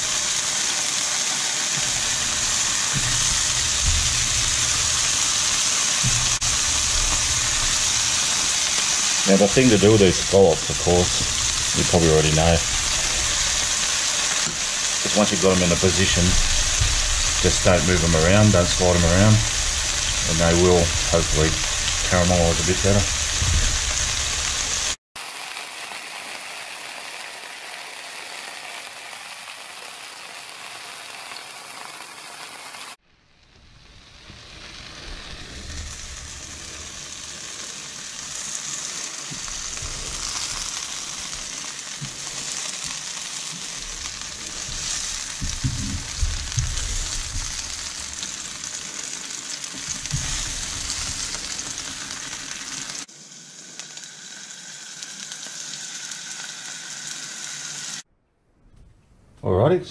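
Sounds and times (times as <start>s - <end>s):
scallops sizzling in a frying pan: 0.0s - 33.0s, 33.6s - 58.0s.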